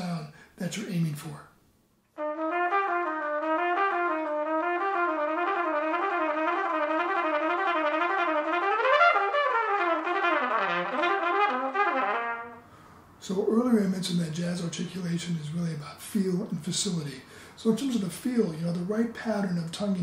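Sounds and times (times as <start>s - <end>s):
trumpet playing fast run: 2.2s - 12.7s.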